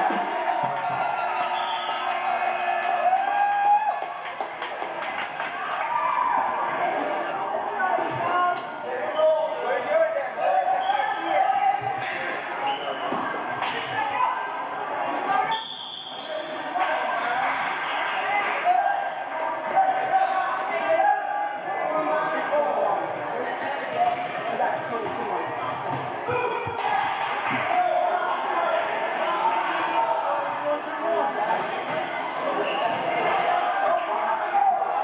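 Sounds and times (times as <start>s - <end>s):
spectators calling and talking: 0.0s - 35.0s.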